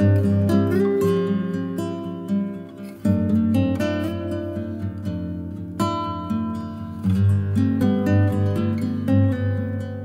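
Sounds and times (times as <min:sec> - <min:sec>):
acoustic guitar picking: 0:00.0 - 0:10.0.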